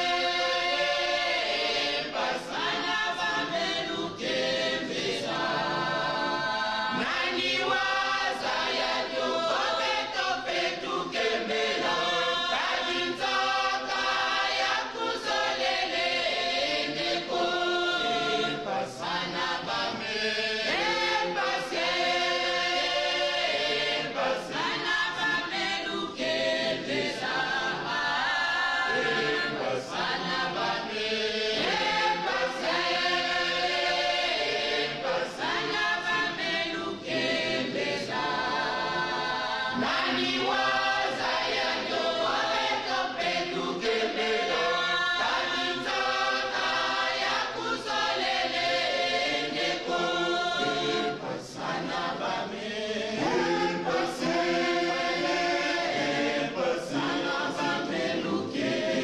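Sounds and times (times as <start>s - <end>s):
choir singing: 0.0s - 59.0s.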